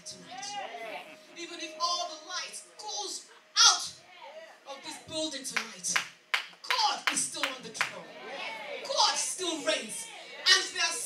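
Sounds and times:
excited speech: 0.0s - 6.0s, 6.6s - 11.0s
sharp hand claps: 5.6s - 8.0s.

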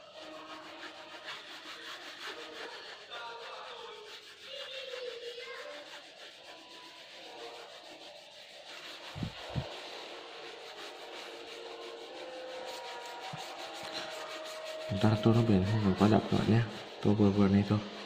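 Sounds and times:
crayon scribbling on paper: 0.0s - 17.8s.

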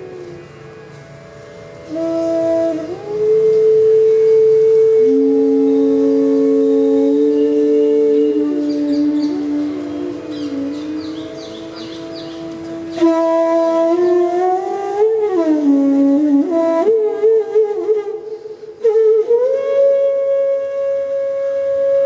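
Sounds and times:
flutes holding long notes: 0.0s - 22.0s.

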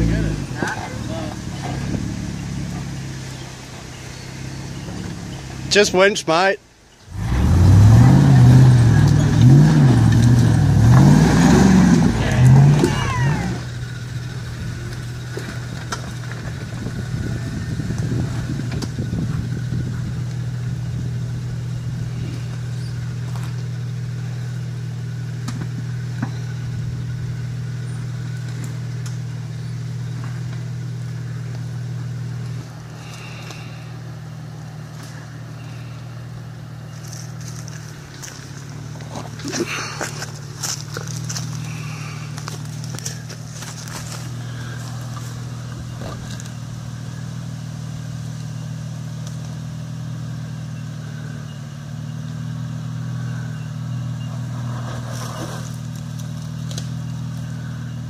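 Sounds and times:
engine revving under load: 0.0s - 5.8s, 7.1s - 48.0s, 48.7s - 58.0s
low engine hum: 0.0s - 58.0s.

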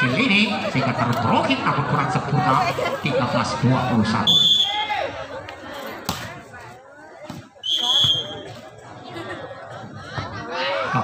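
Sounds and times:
referee's whistle blast: 4.2s - 4.9s, 7.6s - 8.5s.

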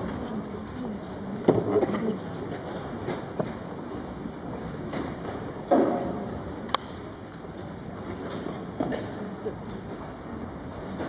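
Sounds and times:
reverberant arena background noise: 0.0s - 11.0s.

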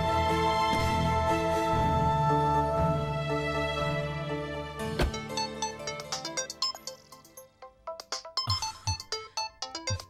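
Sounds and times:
mobile phone ringtone melody: 5.3s - 10.0s.

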